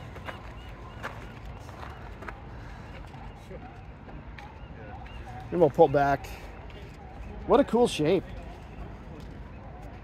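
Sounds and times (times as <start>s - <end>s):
faint voices talking: 0.0s - 10.0s.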